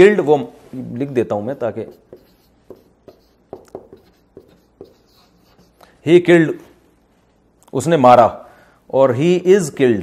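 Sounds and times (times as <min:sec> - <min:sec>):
marker pen writing on paper: 0:01.1 - 0:05.9.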